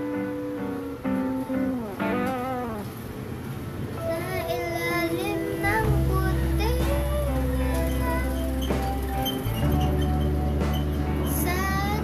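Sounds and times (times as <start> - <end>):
acoustic guitar backing track: 0.0 - 12.0
girl singing a ballad: 4.0 - 9.9, 10.6 - 12.0
bass: 5.6 - 12.0.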